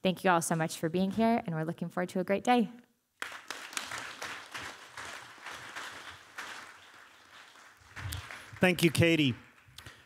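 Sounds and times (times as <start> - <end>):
audience applauding: 3.2 - 10.0.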